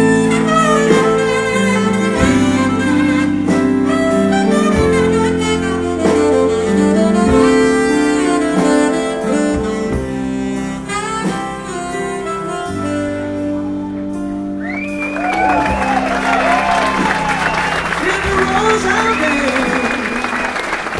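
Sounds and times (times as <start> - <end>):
live band playing slow instrumental: 0.0 - 20.9.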